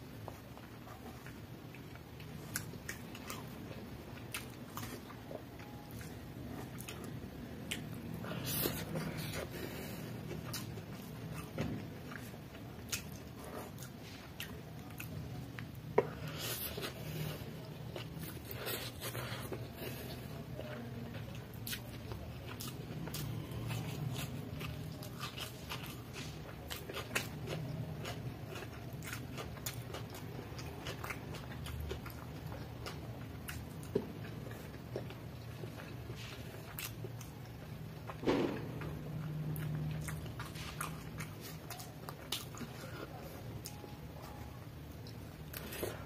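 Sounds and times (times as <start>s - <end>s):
chewing noodles: 0.3s - 46.0s.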